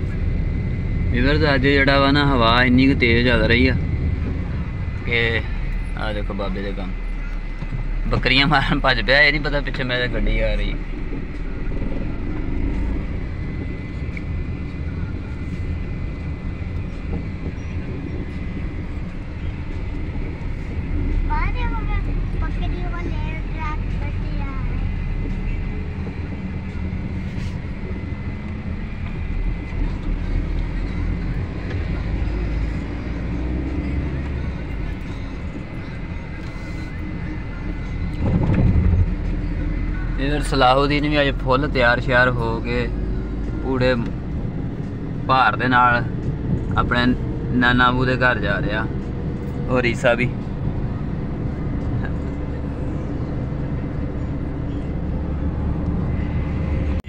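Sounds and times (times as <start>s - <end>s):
car engine and road rumble: 0.0s - 57.0s.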